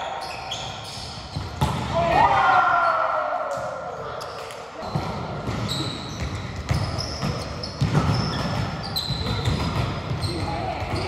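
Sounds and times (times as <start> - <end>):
volleyball hits echoing: 1.3 - 2.5, 4.8 - 11.0.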